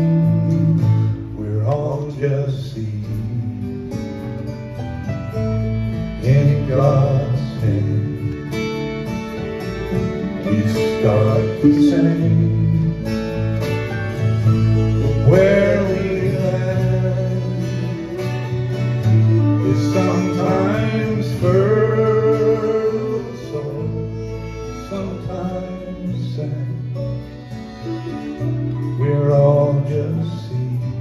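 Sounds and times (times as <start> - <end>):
drums: 0.0 - 21.9
bass: 0.0 - 31.0
strummed acoustic guitars: 0.0 - 31.0
fiddle bowing a melody: 3.6 - 31.0.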